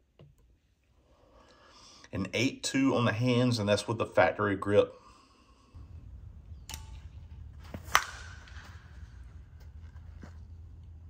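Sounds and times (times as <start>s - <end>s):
low steady rumble: 5.8s - 11.0s
bat striking a softball: 6.5s - 9.6s.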